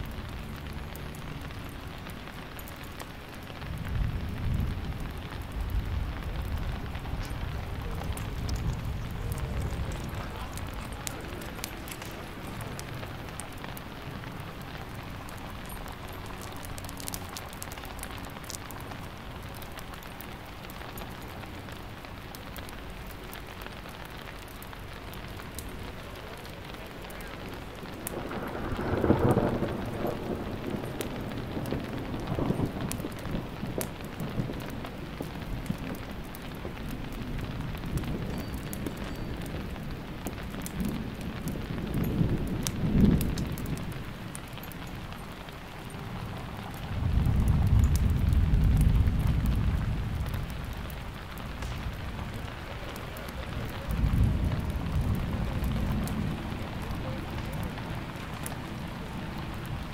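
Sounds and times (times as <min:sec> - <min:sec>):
steady rain: 0:00.0 - 0:59.9
rolling thunder: 0:03.6 - 0:18.8, 0:25.9 - 0:59.9.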